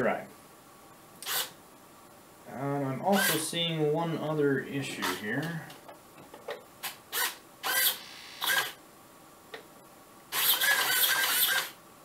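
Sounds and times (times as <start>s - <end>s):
servos whirring: 1.2s - 1.6s, 6.8s - 8.8s, 10.3s - 11.8s.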